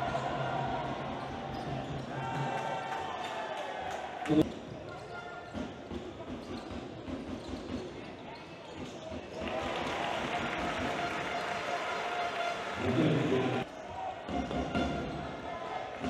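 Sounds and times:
crowd noise: 0.0s - 16.0s.

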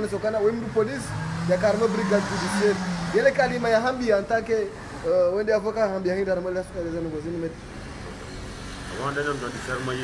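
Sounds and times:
man talking: 0.0s - 7.6s, 8.9s - 10.0s.

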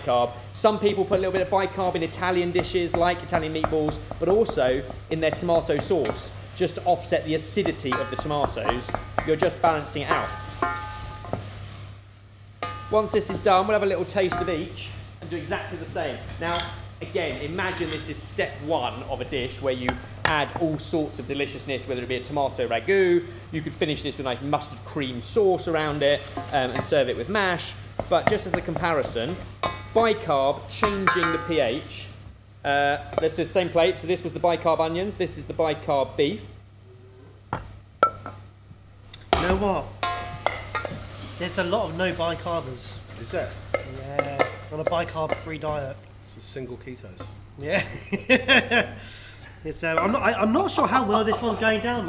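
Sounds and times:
meat sizzling in a saucepan: 0.0s - 36.8s, 37.4s - 46.3s, 49.6s - 52.0s
wooden spoon knocking pan: 1.2s - 11.5s, 12.6s - 14.8s, 19.8s - 21.0s, 25.8s - 27.3s, 27.9s - 30.2s, 30.8s - 31.7s, 37.5s - 38.4s, 39.3s - 41.2s, 43.6s - 45.7s, 49.9s - 52.0s
pan and spoon knocking on plate: 7.5s - 11.5s, 12.6s - 13.5s, 30.8s - 31.6s, 39.3s - 41.1s, 51.0s - 51.6s.

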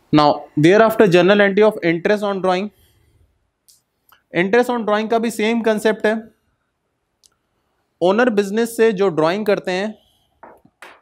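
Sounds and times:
man speaking: 0.1s - 2.8s, 4.3s - 6.3s, 8.0s - 10.0s.

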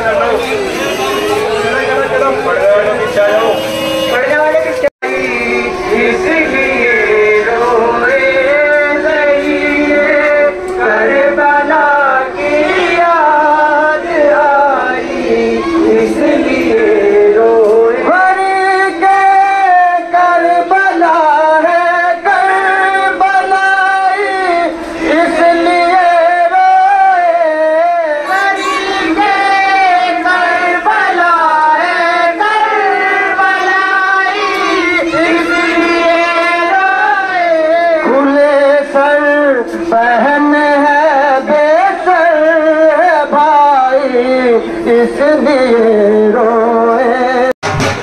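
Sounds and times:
men singing a chant: 4.4s - 47.5s
high-pitched voice singing: 34.2s - 36.6s.

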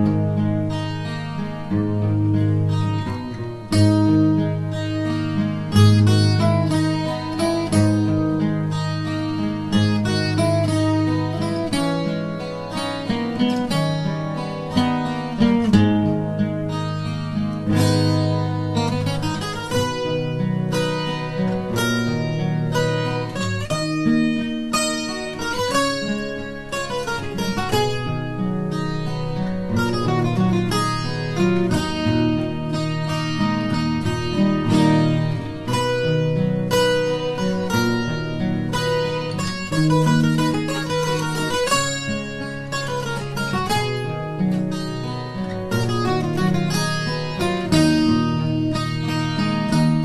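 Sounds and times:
acoustic guitar playing: 0.0s - 50.0s.

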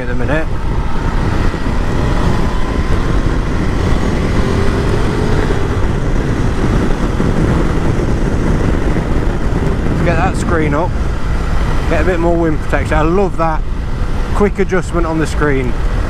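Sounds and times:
motorcycle engine accelerating: 0.0s - 14.5s
wind noise on microphone: 0.0s - 16.0s.

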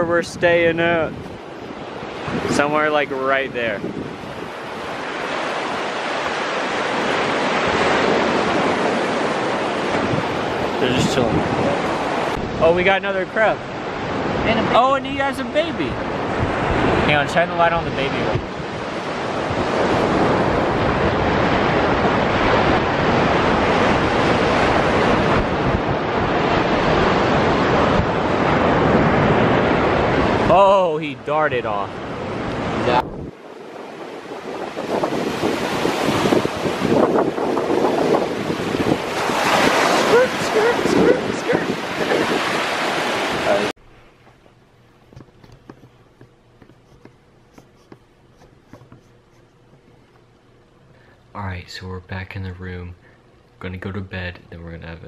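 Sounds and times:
wind buffeting microphone: 0.0s - 30.5s, 31.6s - 43.7s
ocean surf washing: 0.0s - 44.5s
low steady hum: 43.8s - 55.0s
camera rubbing against fabric: 45.0s - 50.2s.

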